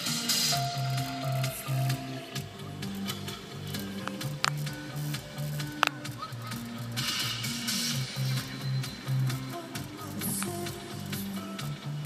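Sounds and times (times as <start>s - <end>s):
burst of hiss: 0.0s - 11.7s
music from car stereo: 0.0s - 12.0s.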